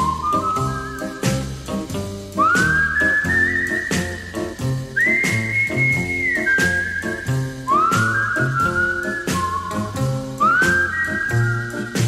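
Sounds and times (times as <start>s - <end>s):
pop ballad accompaniment: 0.0s - 12.0s
whistled melody: 0.0s - 12.0s.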